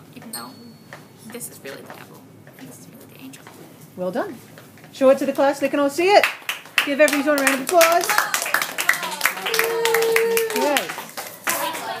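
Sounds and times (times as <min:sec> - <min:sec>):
group clapping by hand: 0:06.2 - 0:12.0.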